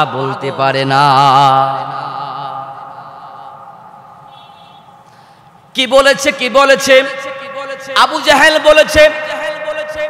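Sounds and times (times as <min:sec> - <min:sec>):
echo of voice: 0:00.0 - 0:10.0.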